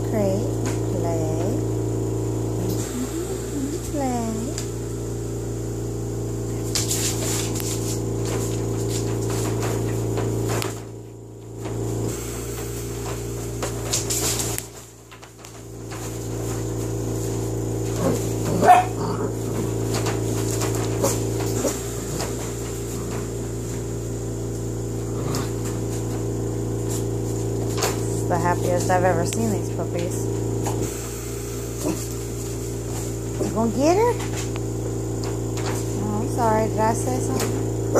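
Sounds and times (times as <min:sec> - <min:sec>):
steady low hum: 0:00.0 - 0:37.9
dog yelping: 0:18.0 - 0:19.4.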